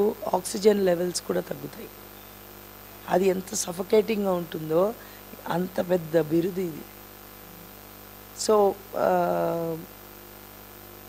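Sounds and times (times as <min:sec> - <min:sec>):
person speaking: 0:00.0 - 0:01.9, 0:03.0 - 0:07.0, 0:08.4 - 0:09.9
electrical mains hum: 0:00.0 - 0:11.0.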